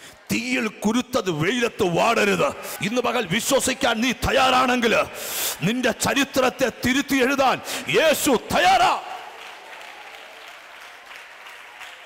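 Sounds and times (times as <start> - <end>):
audience applauding: 7.7 - 12.0.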